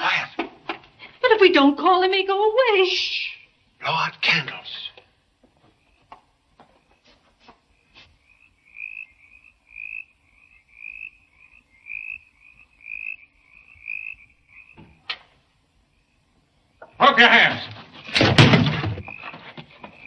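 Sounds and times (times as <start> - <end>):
sharp knock: 18.1 - 19.2.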